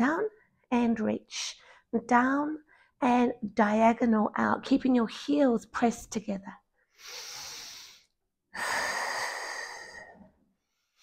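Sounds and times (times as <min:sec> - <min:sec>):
woman breathing while exercising: 0:06.9 - 0:11.0.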